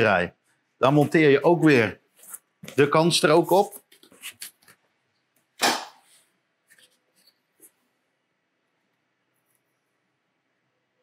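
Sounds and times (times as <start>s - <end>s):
board slapping onto board: 5.6s - 6.1s.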